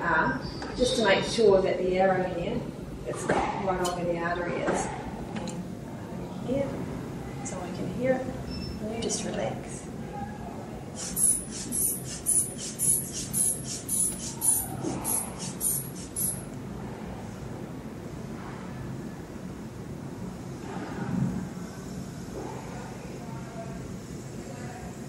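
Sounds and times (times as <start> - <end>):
cuff deflating through valve: 11.0 - 16.5.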